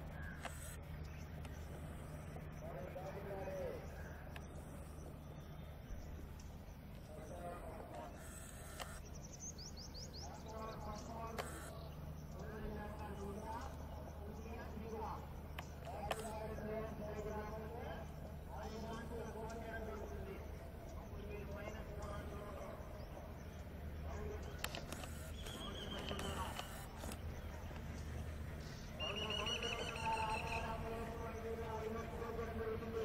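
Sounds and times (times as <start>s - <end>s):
bird chirping: 0.0s - 33.0s
distant diesel locomotives droning: 0.0s - 33.0s
wavering high whine: 0.0s - 33.0s
sharp clicks: 0.3s - 1.6s, 7.9s - 9.0s, 11.3s - 11.9s, 15.5s - 16.4s, 24.3s - 28.1s.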